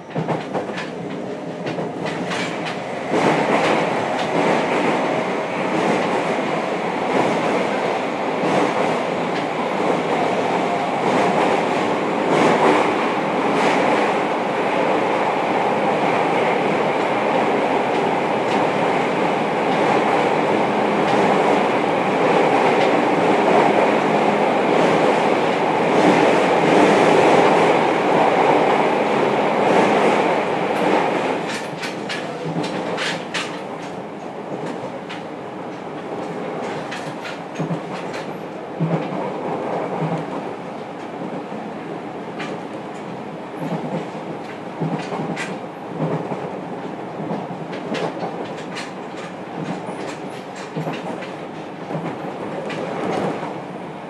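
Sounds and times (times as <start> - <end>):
wheels clicking over rail joints: 0.0 - 5.0, 30.7 - 39.2, 42.4 - 53.5
train wheels rumbling on rail: 0.0 - 54.0.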